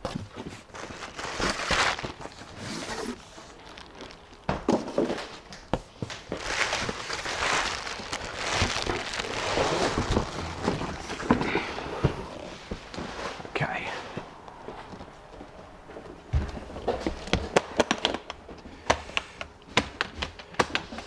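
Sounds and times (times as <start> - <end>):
bubble wrap and cardboard rustling: 0.0 - 13.6.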